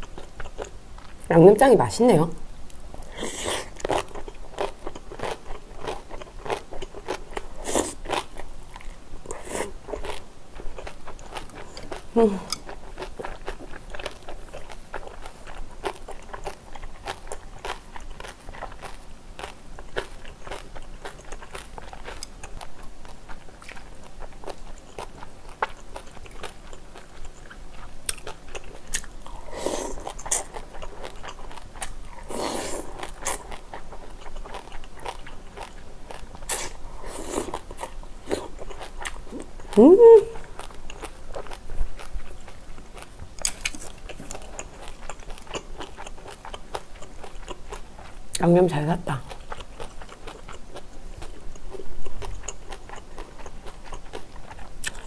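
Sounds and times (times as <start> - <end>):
close chewing and biting: 0.0 - 1.2, 2.9 - 48.4, 49.2 - 55.0.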